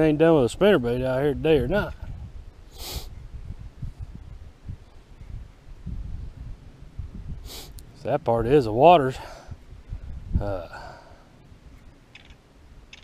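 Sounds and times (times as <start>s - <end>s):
wind buffeting microphone: 0.0s - 13.0s
sharp sniff: 2.7s - 3.1s, 7.4s - 7.8s.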